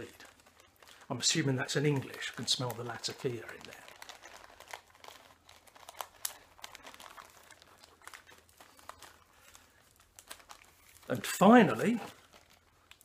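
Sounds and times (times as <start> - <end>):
packaging crinkling and rustling: 0.0 - 13.0.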